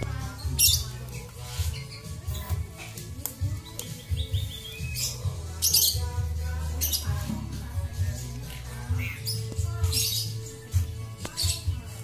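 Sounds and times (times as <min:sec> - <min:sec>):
background music: 0:00.0 - 0:12.0
songbirds chirping: 0:00.0 - 0:12.0.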